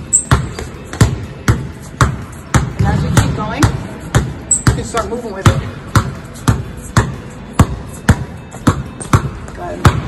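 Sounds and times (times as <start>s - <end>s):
basketball bouncing on hard floor: 0.1s - 10.0s.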